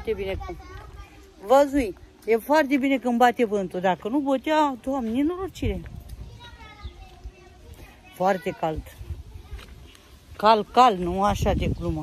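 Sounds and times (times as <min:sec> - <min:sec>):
wind buffeting microphone: 0:00.0 - 0:02.2, 0:04.5 - 0:12.0
distant children's voices: 0:00.0 - 0:02.4, 0:04.9 - 0:11.3.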